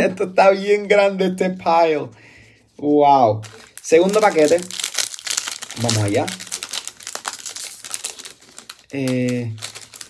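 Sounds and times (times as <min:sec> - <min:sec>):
foil wrapper crinkling: 0:03.4 - 0:10.0.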